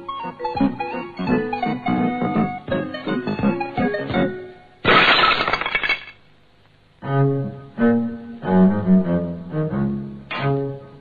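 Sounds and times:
background music: 0:00.0 - 0:04.8, 0:06.9 - 0:11.0.

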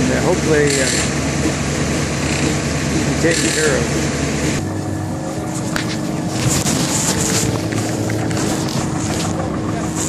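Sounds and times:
diesel engine running under load: 0:00.0 - 0:10.0.

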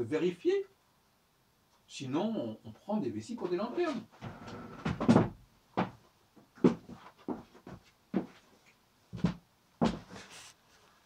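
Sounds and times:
knocks and thumps: 0:04.2 - 0:06.0.

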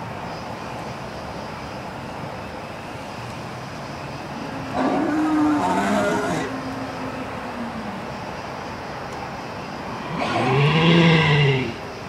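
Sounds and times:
steady background noise: 0:00.0 - 0:12.0
dinosaur roar from speaker: 0:04.7 - 0:06.6, 0:10.1 - 0:11.8.

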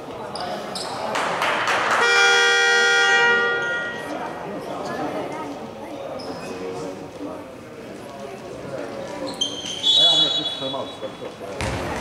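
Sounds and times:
voices echoing in a hall: 0:00.0 - 0:12.0
basketball bouncing on wooden court: 0:11.6 - 0:12.0.

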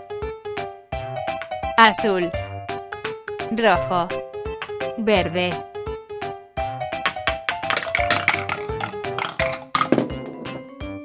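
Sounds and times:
background music: 0:00.0 - 0:11.0
wooden ball clacking down ramps: 0:04.6 - 0:04.9, 0:06.9 - 0:10.7.

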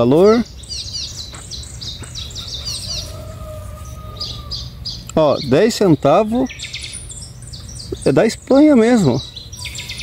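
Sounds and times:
songbird chirping: 0:00.0 - 0:10.0.

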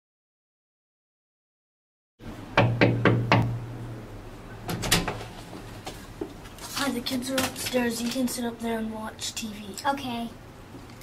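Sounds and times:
steady low hum: 0:02.2 - 0:11.0
knocks on a door: 0:02.6 - 0:03.6.

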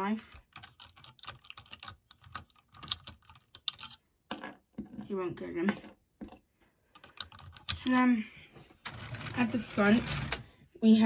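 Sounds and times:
small plastic parts clicking: 0:00.3 - 0:04.7.

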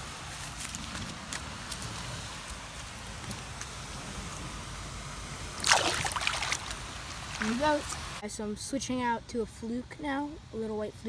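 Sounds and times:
low hiss: 0:00.0 - 0:11.0
fish splashing into water: 0:05.6 - 0:07.6.

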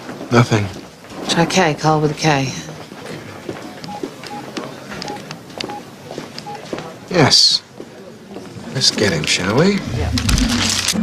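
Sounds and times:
keyboard keys clicking: 0:03.8 - 0:04.4, 0:05.0 - 0:05.8
short electronic beeps: 0:03.9 - 0:06.7.

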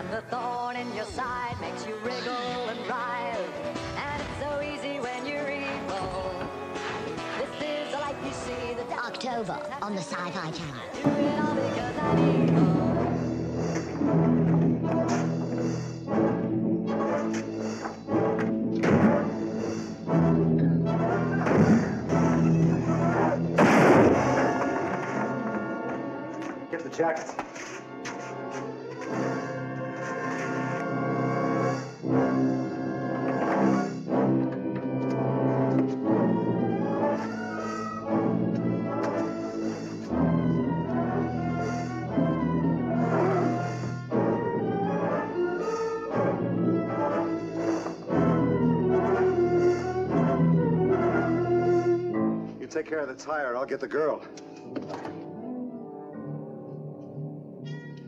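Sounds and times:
dramatic orchestral music with brass: 0:11.1 - 0:54.3
sudden loud crash: 0:23.6 - 0:25.3.

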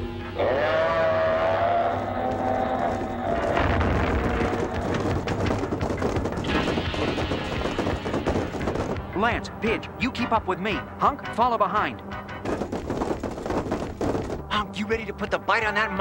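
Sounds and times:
dramatic background music: 0:00.0 - 0:12.9
high-pitched monster cry: 0:00.4 - 0:03.0
rumbling clattering action effects: 0:03.1 - 0:09.4, 0:12.4 - 0:14.5.

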